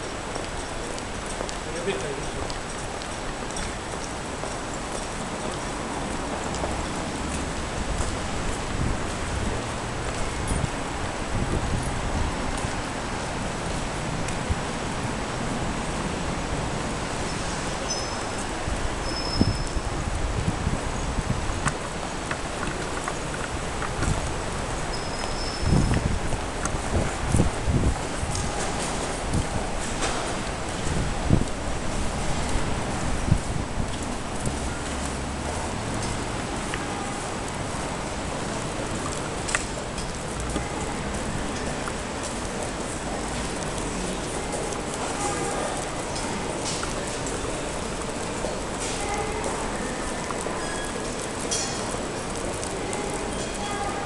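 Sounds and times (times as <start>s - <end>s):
footsteps on stone paving: 0.2s - 14.6s, 20.4s - 54.0s.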